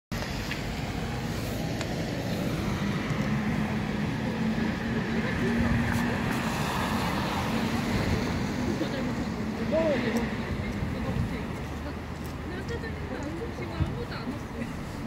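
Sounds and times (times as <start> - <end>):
tyres on a wet road: 0.1 - 15.0
vehicle engines: 0.1 - 15.0.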